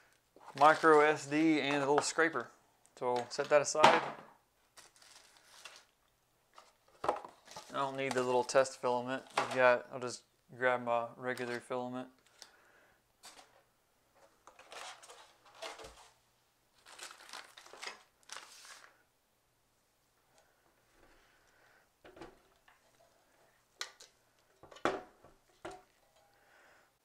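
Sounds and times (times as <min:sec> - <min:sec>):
plastic packaging crinkling: 0:00.4 - 0:02.2, 0:04.6 - 0:06.1, 0:14.5 - 0:19.0.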